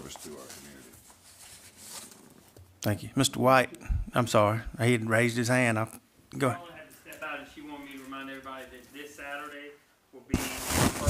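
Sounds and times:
man speaking: 2.8s - 11.0s.

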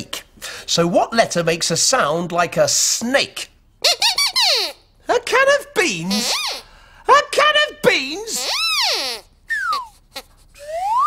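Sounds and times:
puppet dog squeaky voice: 3.8s - 4.9s, 5.5s - 10.4s.

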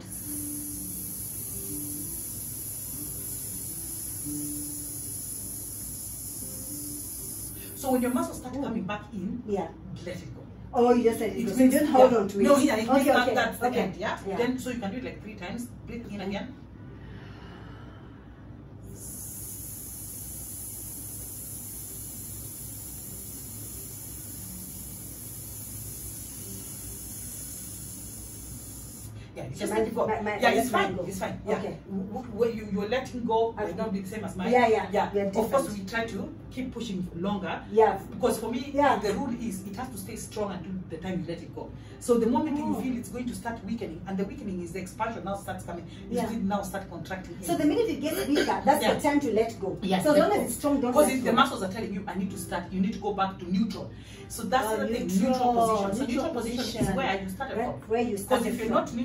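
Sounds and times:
long hissed exhalation: 0.0s - 7.9s, 16.9s - 29.4s.

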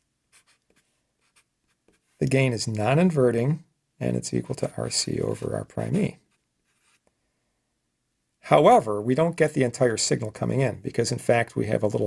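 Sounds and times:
marker scratching on paper: 0.0s - 2.2s, 6.3s - 7.0s.

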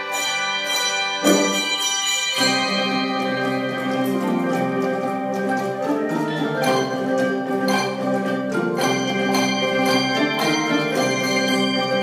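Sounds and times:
handbell choir ringing chords: 0.0s - 12.0s.

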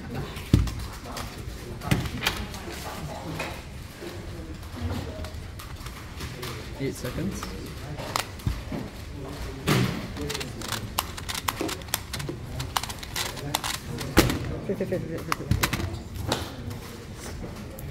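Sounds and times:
sharp plastic clicks: 9.6s - 14.5s.

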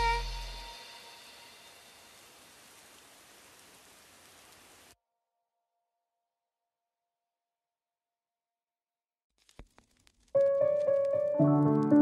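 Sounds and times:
faint rain-like noise: 0.0s - 5.0s, 9.5s - 12.0s.

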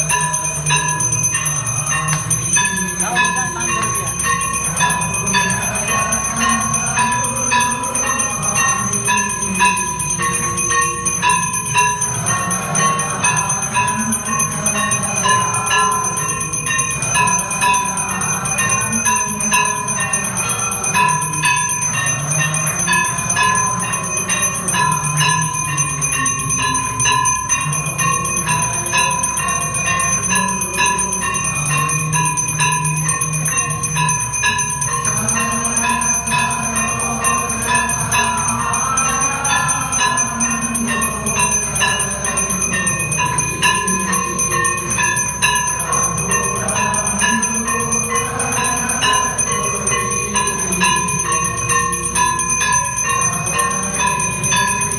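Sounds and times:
temple bells ringing: 0.0s - 54.9s.

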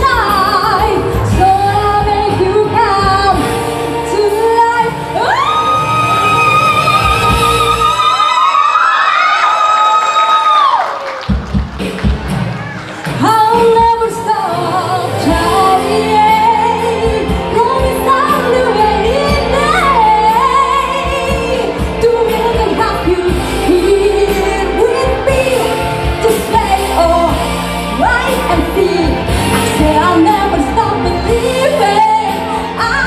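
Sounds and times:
woman singing into a microphone: 0.0s - 8.0s, 13.2s - 33.0s
backing music through a pa: 11.3s - 33.0s.

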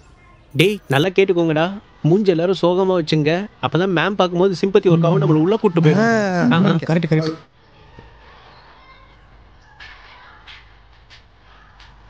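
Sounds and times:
wavering voice: 0.6s - 1.0s, 5.1s - 6.9s.

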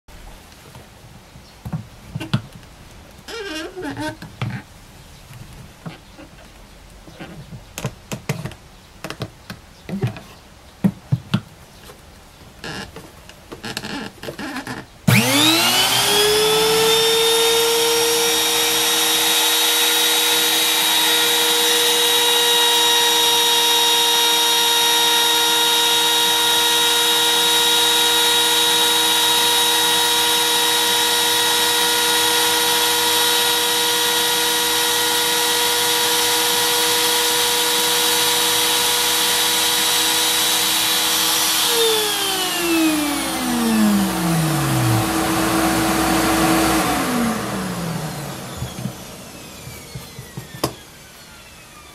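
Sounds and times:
router high whine: 15.1s - 51.9s.

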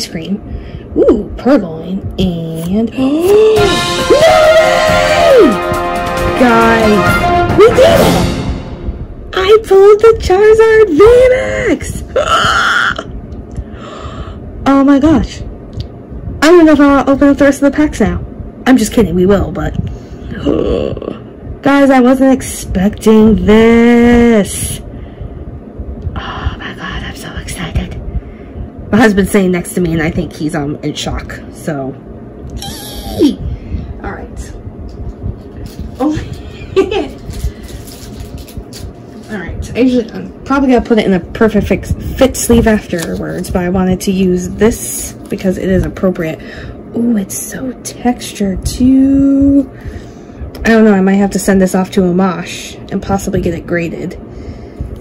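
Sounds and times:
low rumble: 0.0s - 55.0s
woman exclaiming excitedly: 3.0s - 5.6s.

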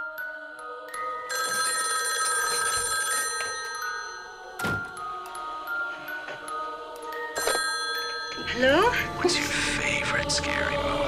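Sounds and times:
telephone bell ringing: 1.2s - 4.6s, 7.3s - 9.2s.

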